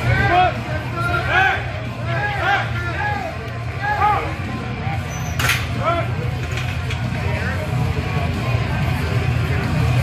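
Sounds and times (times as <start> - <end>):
people shouting encouragement: 0.0 - 4.4.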